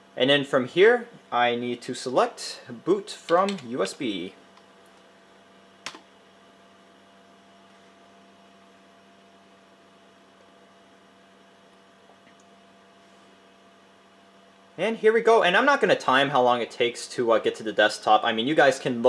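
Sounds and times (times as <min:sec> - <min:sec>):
desktop computer humming: 0:00.0 - 0:18.8.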